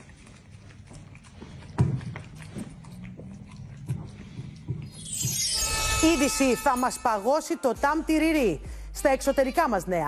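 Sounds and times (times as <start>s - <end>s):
dog chewing and licking: 0.0s - 5.5s.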